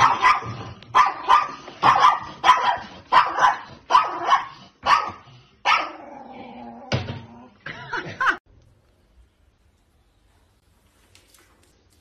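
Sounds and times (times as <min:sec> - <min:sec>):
small dog barking: 0:00.0 - 0:06.0.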